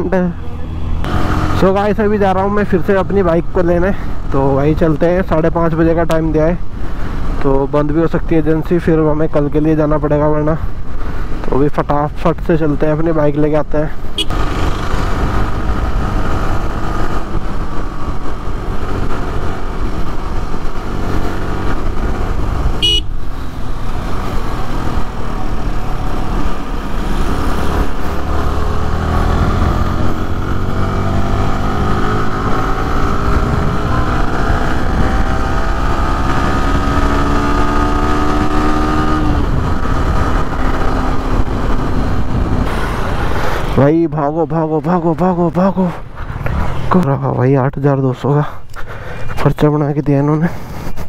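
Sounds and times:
motorcycle engine: 0.0 - 4.8, 14.0 - 43.8
road noise: 0.0 - 51.0
short high-pitched horn toot: 22.8 - 23.1.

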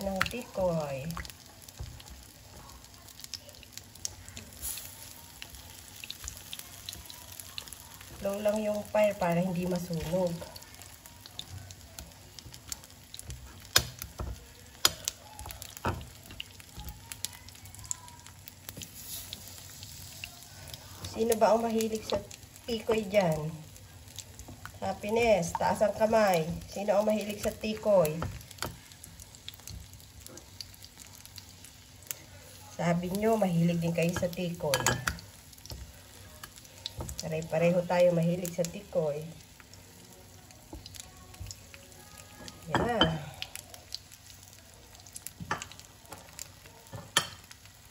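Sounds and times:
rice cake sizzling in oil: 0.0 - 47.9.

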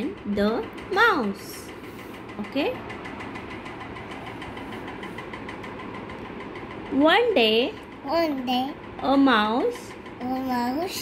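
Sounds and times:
pulsing mechanical hum: 0.0 - 11.0.

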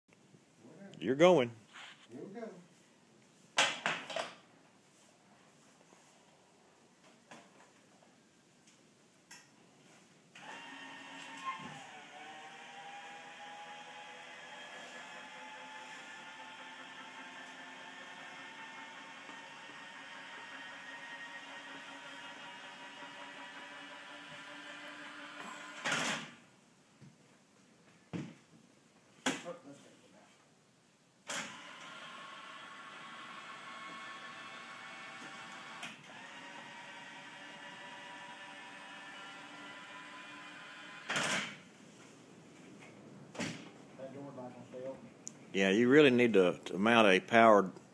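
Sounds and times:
lift motor humming: 10.4 - 25.9.

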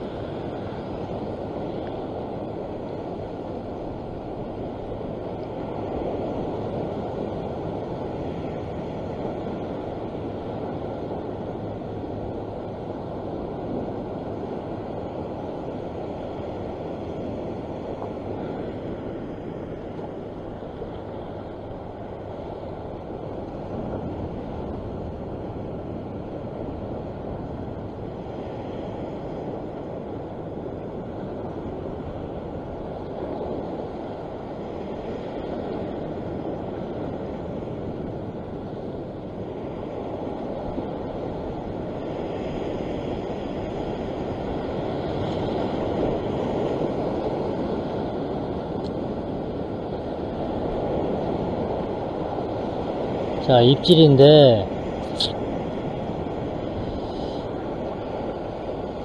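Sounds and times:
sea surf washing on rocks: 0.0 - 59.0.

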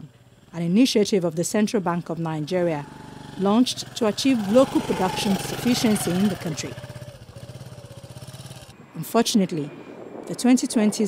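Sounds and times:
small engine puttering: 0.0 - 8.8.

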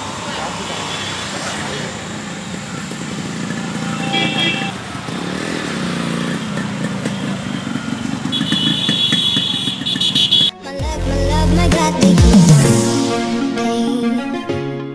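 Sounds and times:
two-stroke motorcycle engine revving: 0.0 - 10.5
brief high tone: 3.7 - 4.8.

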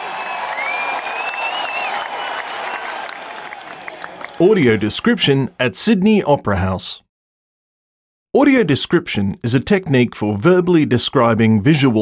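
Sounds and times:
audience applause: 0.0 - 5.4
high gliding whistles: 0.5 - 2.9.

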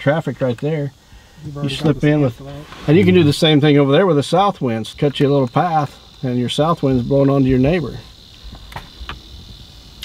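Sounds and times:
high-pitched insect trill: 0.0 - 10.0
low rumble inside vehicle: 1.8 - 3.7.

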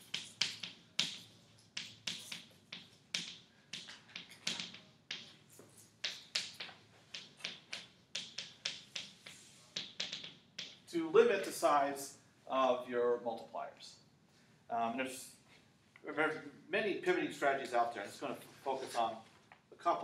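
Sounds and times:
chalk tapping and scratching: 0.0 - 11.5.

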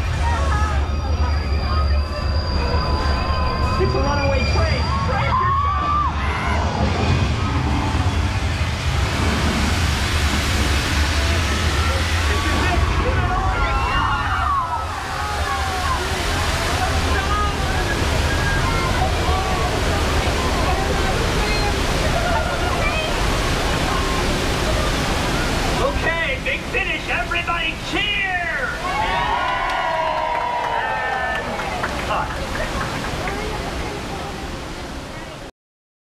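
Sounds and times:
flood water rushing and splashing: 0.0 - 1.9, 2.5 - 35.5
deep steady rumble: 0.0 - 27.9.

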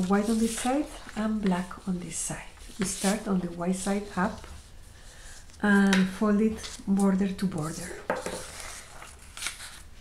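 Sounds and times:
paper rustling and folding: 0.0 - 10.0.

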